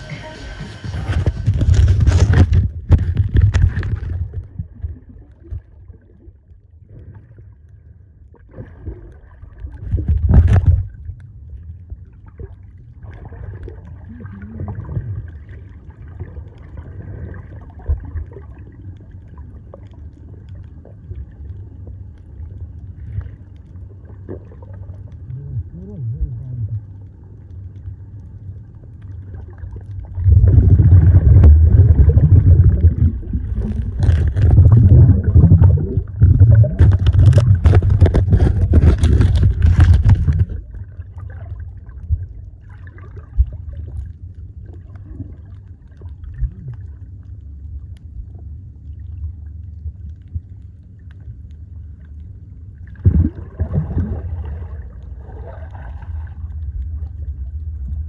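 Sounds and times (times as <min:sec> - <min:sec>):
muffled underwater rumble: 0:00.0 - 0:58.0
bubbling and splashing underwater: 0:00.9 - 0:58.0.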